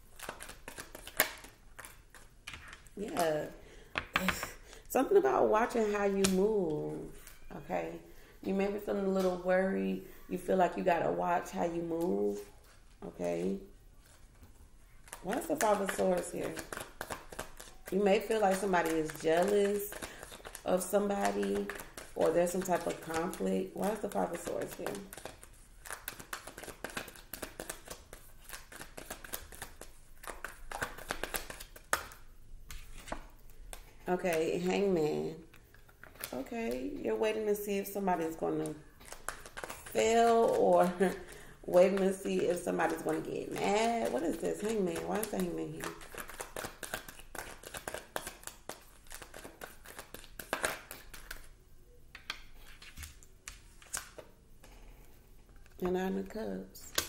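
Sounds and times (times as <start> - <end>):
cards being shuffled: 0.1 - 3.2, 15.0 - 33.9, 38.2 - 51.5, 52.1 - 54.8.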